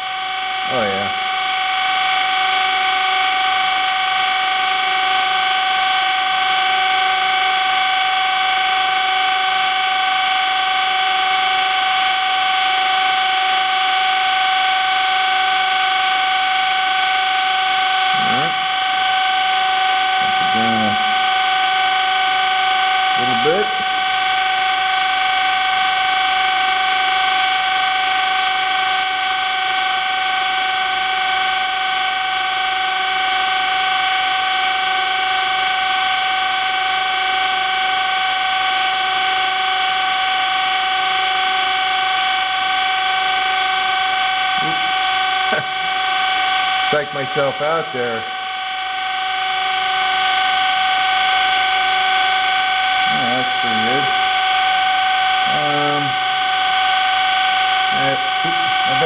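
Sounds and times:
surface grinder whining: 17.9s - 41.7s, 55.2s - 59.0s.

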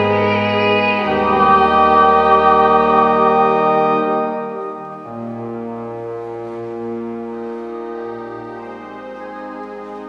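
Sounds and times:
church organ chord: 0.0s - 10.0s.

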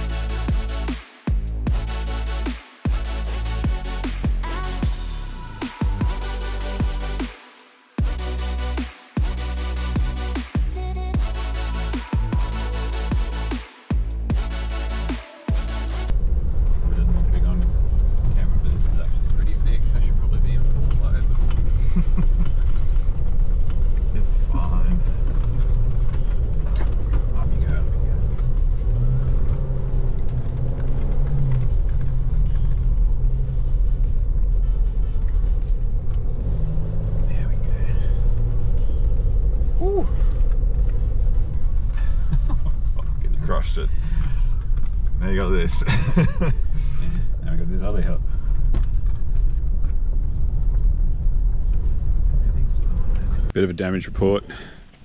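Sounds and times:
vehicle engine and tyres rumbling: 8.0s - 55.0s.

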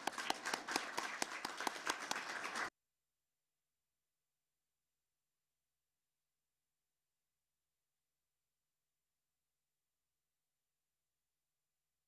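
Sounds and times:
audience clapping: 0.0s - 2.7s.

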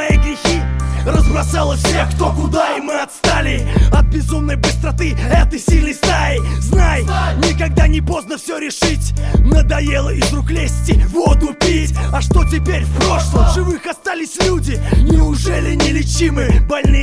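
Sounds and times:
rapping over a beat: 0.0s - 17.0s
kick drum: 0.1s - 0.3s, 3.8s - 4.2s, 5.4s - 5.9s, 6.8s - 7.0s, 9.4s - 9.7s, 10.9s - 11.6s, 12.3s - 12.5s, 13.4s - 13.6s, 15.0s - 15.3s, 16.5s - 17.0s
heavy bass line: 0.1s - 8.2s, 8.8s - 13.8s, 14.4s - 16.8s.

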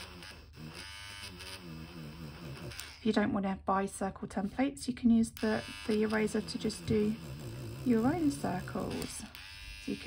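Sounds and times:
electric eraser motor buzzing: 0.0s - 3.1s, 4.3s - 10.0s.

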